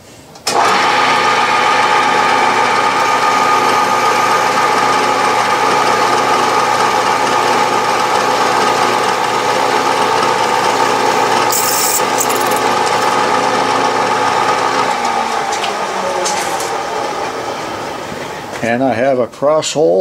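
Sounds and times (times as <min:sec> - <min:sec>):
milling machine spindle running: 0:00.5 - 0:18.6
drill cutting brass: 0:10.3 - 0:14.5.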